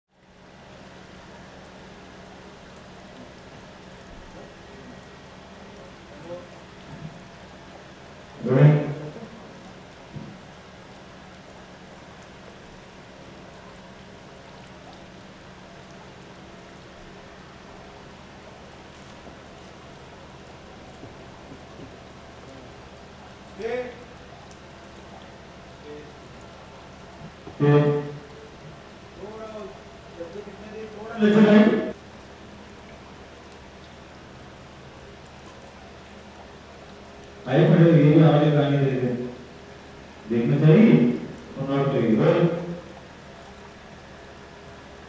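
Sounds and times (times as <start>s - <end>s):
faint low hum: 0.1s - 45.0s
background hiss: 0.4s - 33.0s, 33.7s - 45.0s.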